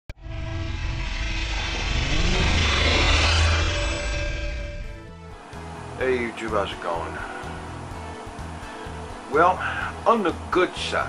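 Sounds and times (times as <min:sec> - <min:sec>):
low rumble: 0:00.1 - 0:06.0
jet-like whoosh: 0:00.2 - 0:05.6
sustained musical tones: 0:00.2 - 0:06.5.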